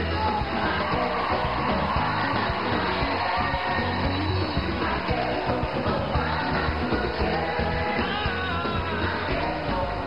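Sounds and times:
congregation singing gospel music: 0.0 - 10.0.

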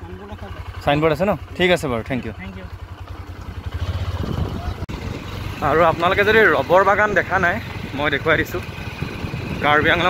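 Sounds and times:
vehicle engine throbbing: 0.0 - 10.0.

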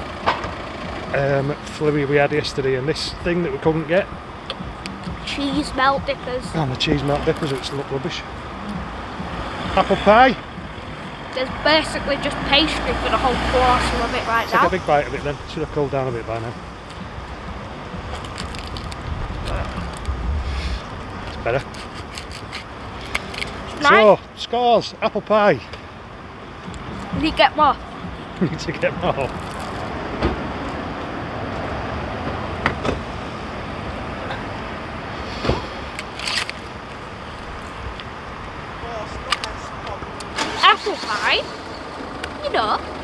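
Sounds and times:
road traffic: 0.0 - 43.0
wind on microphone: 16.6 - 23.0.

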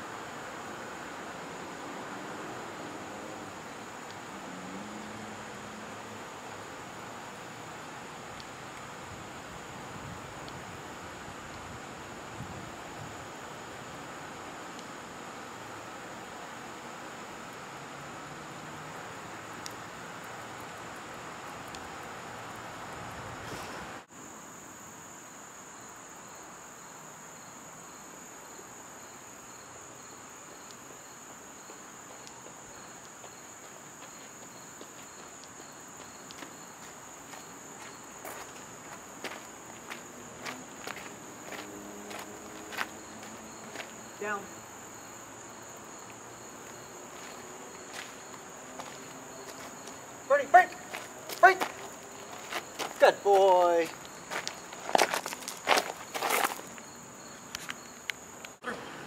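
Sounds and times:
footsteps on gravel: 33.2 - 43.9, 46.6 - 56.9
person giving spoken command: 44.2 - 44.5, 50.3 - 51.8, 53.0 - 53.9.

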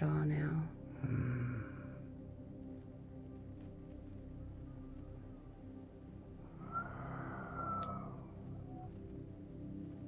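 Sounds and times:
synth pad music: 0.3 - 10.0
airy swell with whistle tone: 6.4 - 8.9.

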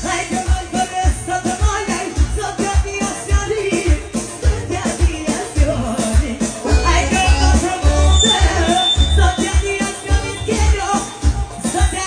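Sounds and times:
electronic keyboard: 0.0 - 12.0
heavy bass beat: 0.0 - 12.0.

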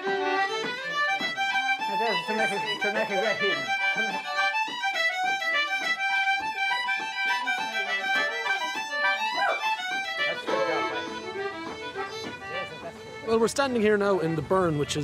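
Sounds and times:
fiddle playing fast tune: 0.0 - 15.0.

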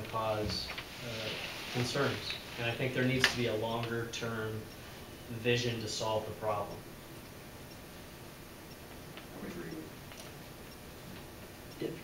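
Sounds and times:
faint ticks and clicks: 8.6 - 12.0.

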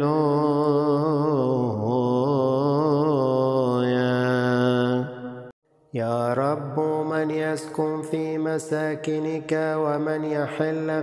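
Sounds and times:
solo voice chanting: 0.0 - 11.0.

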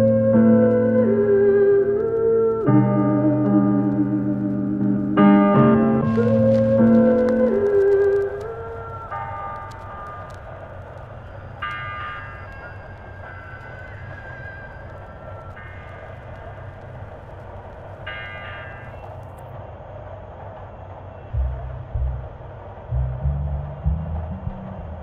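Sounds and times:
low rumble: 0.0 - 11.7, 21.3 - 25.0
held electronic notes: 0.0 - 19.4.

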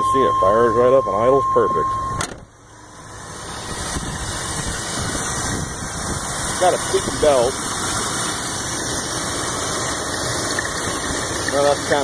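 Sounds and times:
warning chime: 0.0 - 2.2
car engine idling: 0.0 - 12.0
car door shutting: 1.8 - 2.6.

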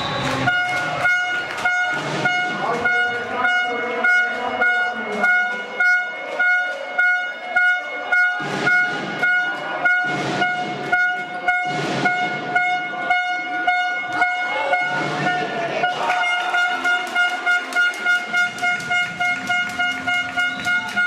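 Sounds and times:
crowd shouting: 0.0 - 21.0
horn blasts: 0.0 - 21.0
sharp rhythmic beats: 0.0 - 21.0.

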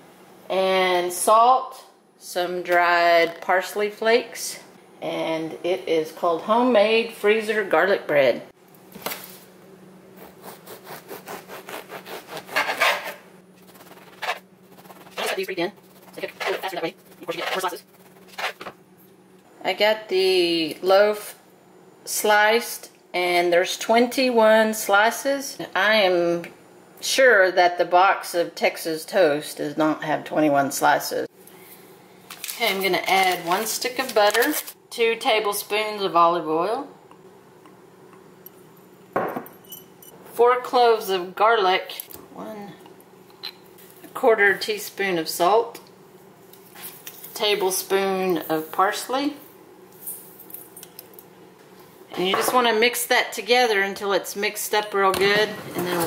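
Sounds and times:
faint steady hum: 0.0 - 56.0
knife sawing through crusty bread: 10.2 - 18.6.

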